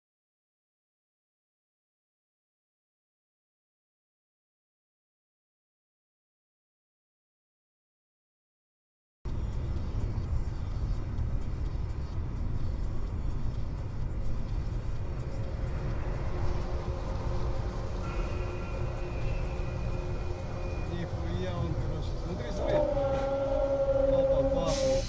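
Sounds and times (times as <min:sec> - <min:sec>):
car road and engine rumble: 0:09.3 - 0:25.0
steady held tones: 0:15.8 - 0:25.0.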